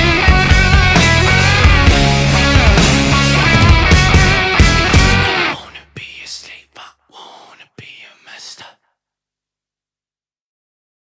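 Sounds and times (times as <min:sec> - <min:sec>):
person whispering: 0:05.4 - 0:09.0.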